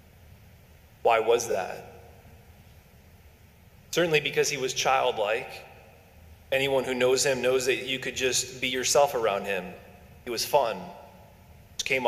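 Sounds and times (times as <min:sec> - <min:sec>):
man speaking: 0:01.0 - 0:02.0, 0:03.9 - 0:05.8, 0:06.5 - 0:11.1, 0:11.8 - 0:12.0.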